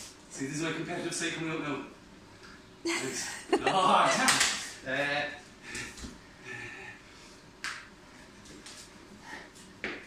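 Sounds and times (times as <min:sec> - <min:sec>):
hand slapping tiled floor: 0:04.2 - 0:04.6, 0:07.6 - 0:07.9.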